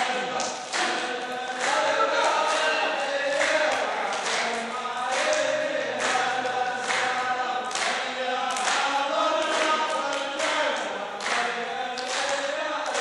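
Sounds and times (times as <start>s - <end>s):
hands clapping in steady beat: 0.0s - 13.0s
men chanting in unison: 0.0s - 13.0s.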